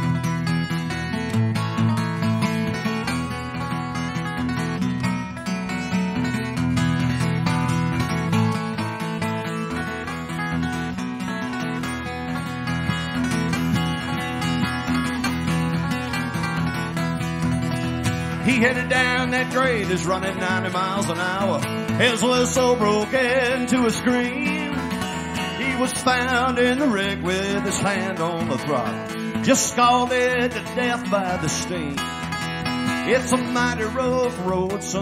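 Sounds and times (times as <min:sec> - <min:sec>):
acoustic guitar strummed: 0:00.0 - 0:35.0.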